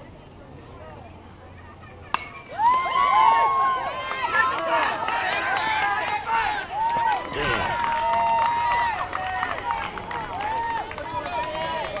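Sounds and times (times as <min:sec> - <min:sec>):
people shouting and calling out: 0:01.6 - 0:12.0
long held shout: 0:02.6 - 0:12.0.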